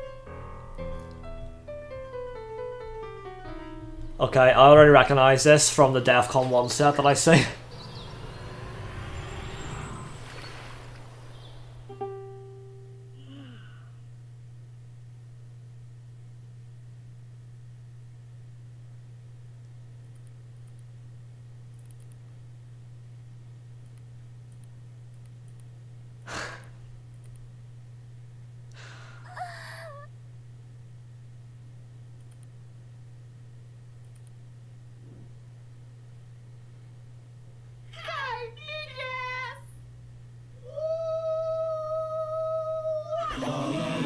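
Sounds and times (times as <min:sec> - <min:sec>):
constant low hum: 0:00.0 - 0:44.0
person breathing out: 0:13.2 - 0:14.0, 0:28.8 - 0:30.1
high vocal sound: 0:29.3 - 0:30.1, 0:40.6 - 0:44.0.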